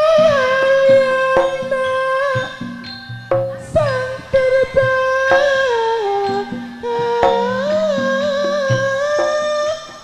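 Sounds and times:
instrumental backing music: 0:00.0 - 0:10.0
person singing long note: 0:03.5 - 0:10.0.

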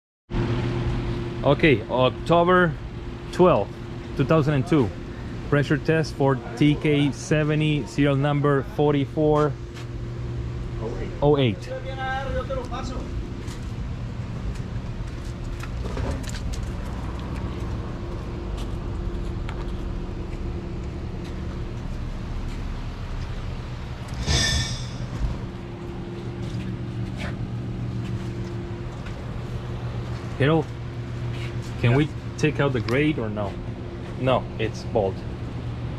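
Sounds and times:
concrete pump engine droning: 0:00.3 - 0:35.9.

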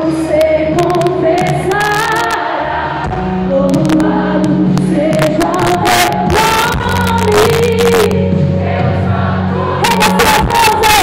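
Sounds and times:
people singing: 0:00.0 - 0:11.0
worship band playing: 0:00.7 - 0:11.0.

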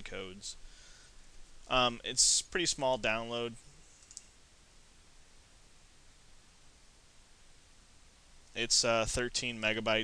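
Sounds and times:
mouse click: 0:04.0 - 0:04.3.

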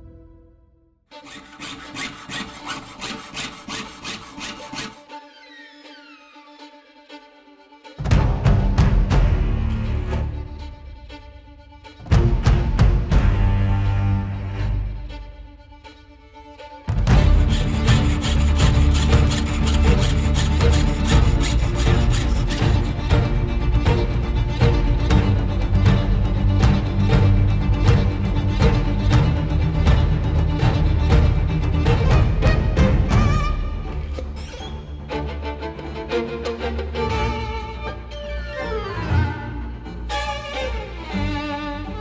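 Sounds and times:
background music: 0:00.0 - 0:42.0
saw blade cutting metal sheet: 0:01.1 - 0:05.2, 0:17.2 - 0:23.0.

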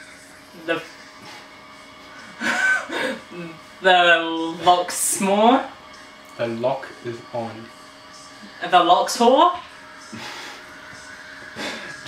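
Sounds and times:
young woman laughing: 0:02.3 - 0:03.5.

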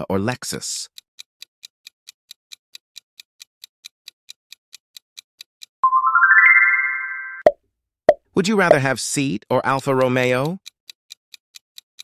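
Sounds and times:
rising chime notes: 0:05.8 - 0:07.5.

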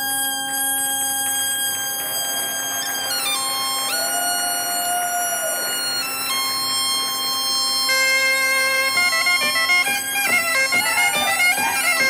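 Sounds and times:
reed and wind instruments melody: 0:00.0 - 0:12.0.

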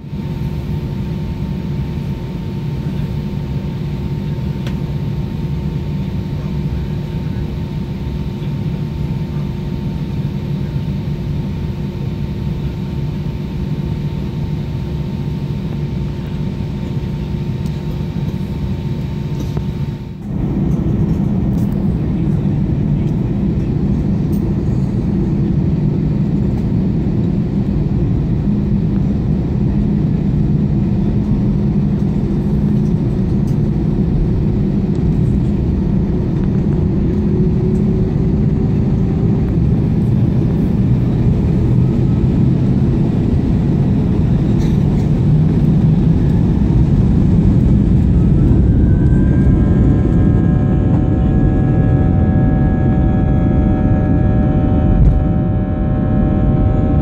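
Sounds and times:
jet engine rumble in cabin: 0:00.0 - 0:57.0
rising engine whine: 0:15.1 - 0:57.0.

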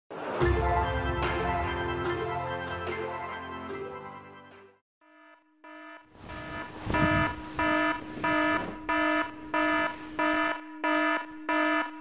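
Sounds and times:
smartphone alarm beeping: 0:05.7 - 0:12.0
rustling noise: 0:06.1 - 0:10.4.

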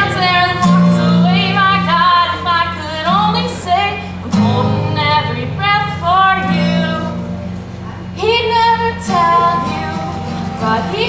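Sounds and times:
girl singing: 0:00.0 - 0:07.2, 0:08.0 - 0:11.0
acoustic guitar: 0:00.0 - 0:11.0.

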